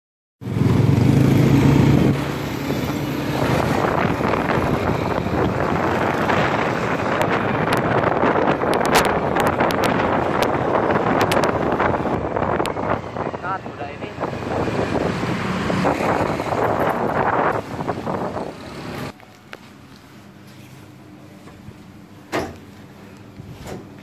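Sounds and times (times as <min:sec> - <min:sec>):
motorcycle engine: 0:00.4 - 0:19.2
road and wind rush: 0:00.4 - 0:19.5.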